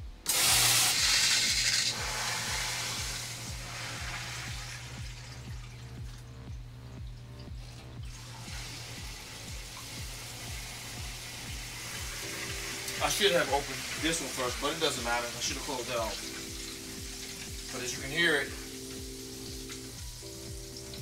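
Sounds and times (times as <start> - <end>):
water pump humming: 0.0 - 21.0
water hissing into filter housings: 0.3 - 21.0.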